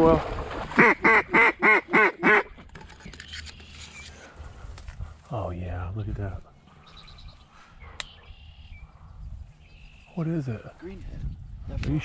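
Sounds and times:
duck call quacks: 0.8s - 2.5s.

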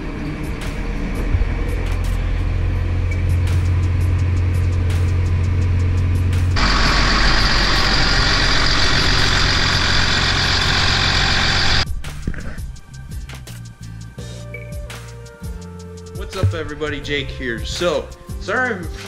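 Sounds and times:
tractor diesel engine idling: 6.6s - 11.8s.

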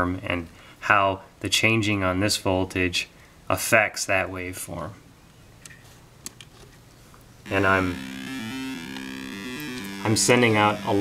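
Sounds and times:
low hum: 7.4s - 11.0s.

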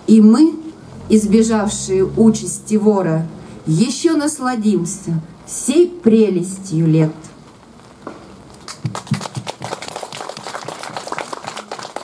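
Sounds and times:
audience applauding: 8.6s - 12.0s.

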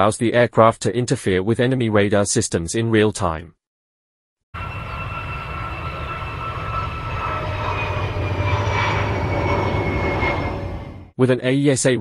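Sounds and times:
jet engines at takeoff thrust: 4.6s - 11.2s.

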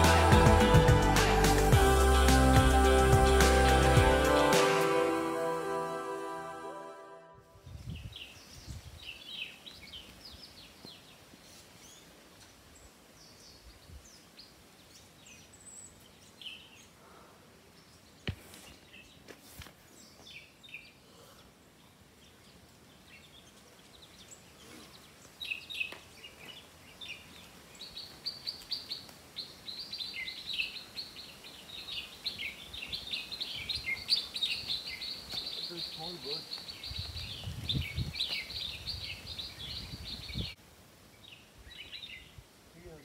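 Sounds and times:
birds chirping: 7.0s - 43.0s.

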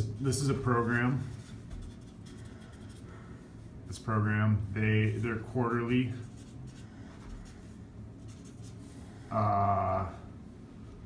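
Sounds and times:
marker scratching on paper: 0.3s - 3.1s, 5.1s - 8.9s.

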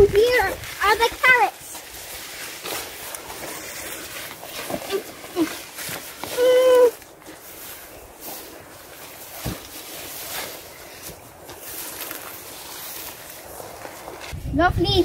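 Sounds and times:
child speaking: 0.0s - 1.8s, 14.4s - 15.0s
rustling and small knocks: 0.0s - 14.4s.

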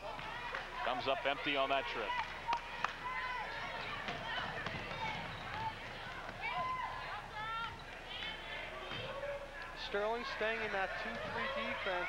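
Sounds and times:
crowd voices: 0.0s - 12.0s
shoes squeaking on gym floor: 4.1s - 5.8s.

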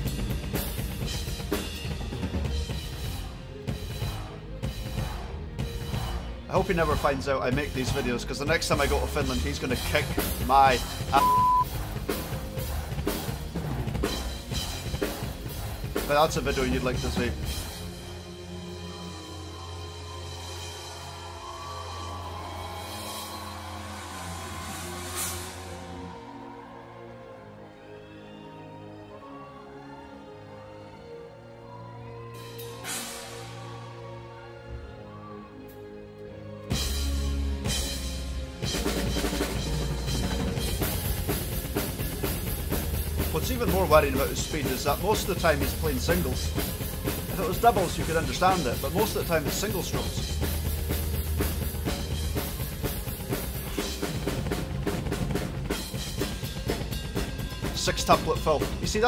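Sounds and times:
rock drum kit played hard: 0.0s - 6.1s, 8.7s - 17.9s, 37.7s - 59.0s
metal band playing: 7.6s - 18.0s, 37.6s - 59.0s.

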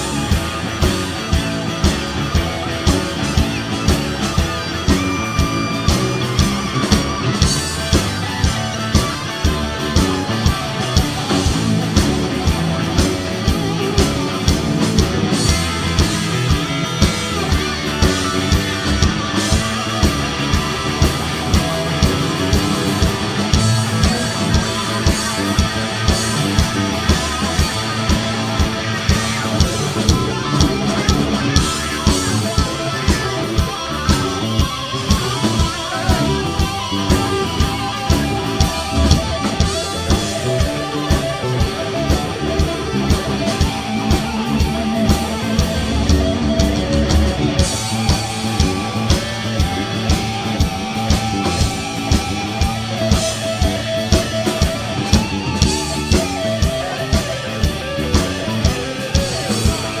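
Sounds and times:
bass guitar: 0.0s - 60.0s
drum kit beat: 0.0s - 60.0s
electric guitars: 0.0s - 60.0s.

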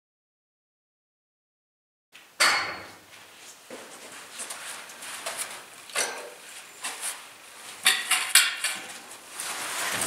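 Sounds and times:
sharp knock with metallic ring: 2.4s - 3.0s.

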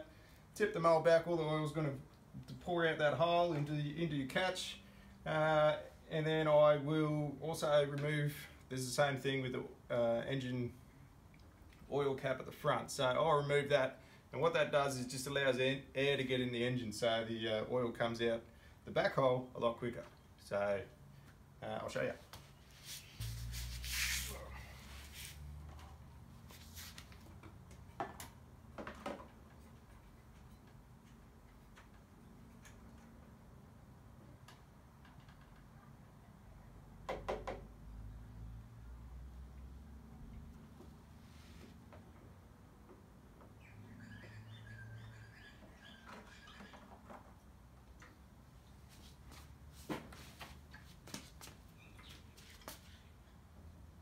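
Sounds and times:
bird chirping: 43.4s - 47.0s, 51.7s - 53.4s.

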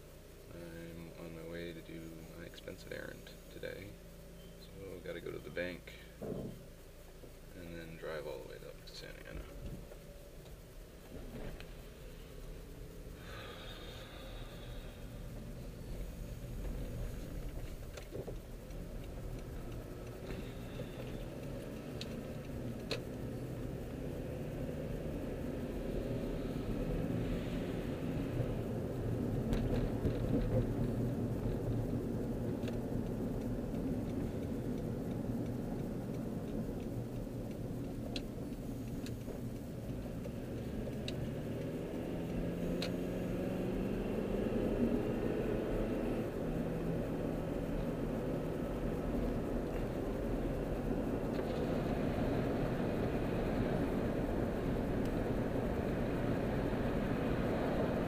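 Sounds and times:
car engine and road rumble: 0.0s - 58.0s.

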